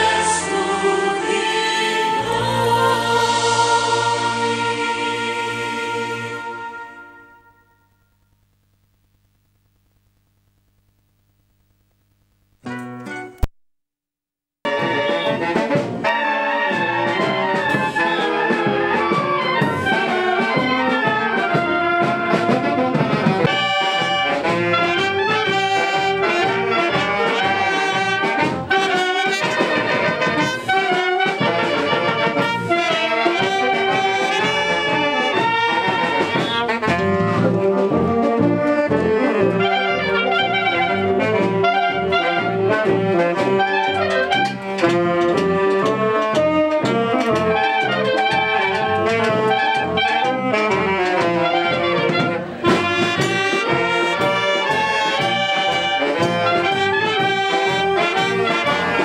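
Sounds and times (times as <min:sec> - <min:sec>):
wind band playing: 0:00.0 - 0:08.0, 0:14.7 - 0:59.0.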